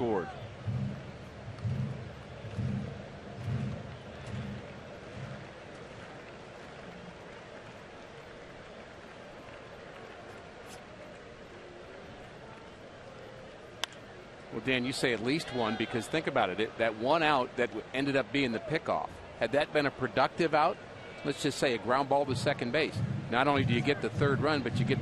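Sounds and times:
low pulses: 0.0s - 6.2s, 22.4s - 25.0s
stadium crowd murmur: 0.0s - 25.0s.

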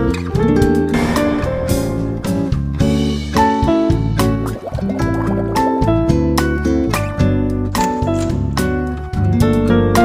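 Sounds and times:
plucked guitar-like notes: 0.2s - 7.4s
sustained bass line: 1.0s - 6.8s
bubbly wavering sound: 4.2s - 6.1s.

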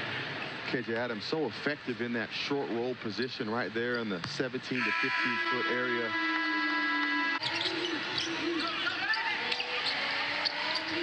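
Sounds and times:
sneakers squeaking on court: 7.4s - 11.0s.

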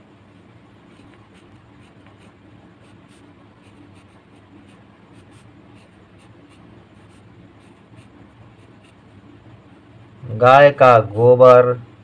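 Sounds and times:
low steady hum: 0.0s - 12.0s
pen scratching on paper: 0.8s - 9.3s.

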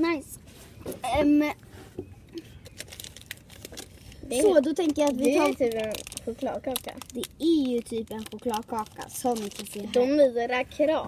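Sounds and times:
wrapper crinkling: 2.6s - 10.0s.

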